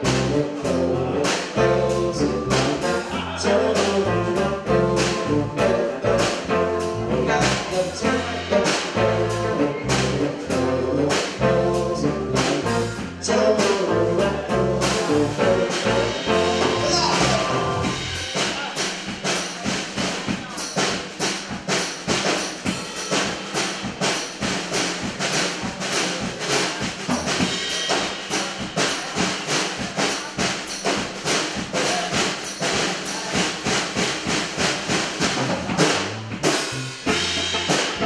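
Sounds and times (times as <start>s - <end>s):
drum kit fast beat: 0.0s - 38.0s
live band playing: 0.0s - 38.0s.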